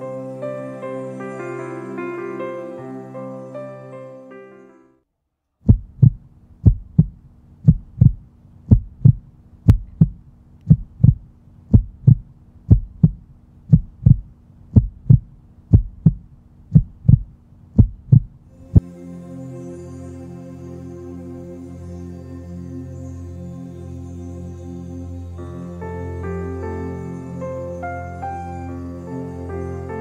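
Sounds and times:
music: 0.0s - 5.1s, 18.5s - 30.0s
heartbeat thumps: 5.6s - 18.8s
steady low drone: 5.7s - 30.0s.

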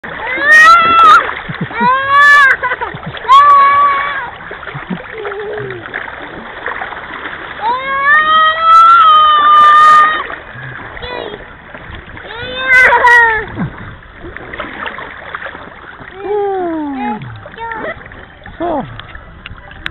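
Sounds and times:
water splashing: 0.0s - 19.9s.

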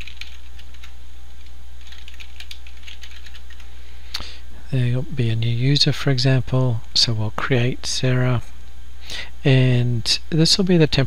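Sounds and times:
computer keyboard typing: 0.0s - 3.7s
steady low hum: 0.0s - 11.0s.

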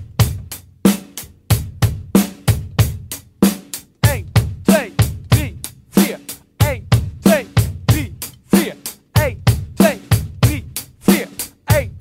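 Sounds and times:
drum kit groove: 0.0s - 12.0s.

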